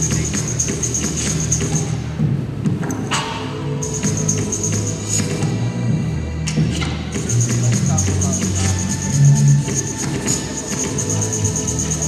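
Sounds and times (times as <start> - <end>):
electronic dance music: 0.0 - 2.7, 3.6 - 12.0.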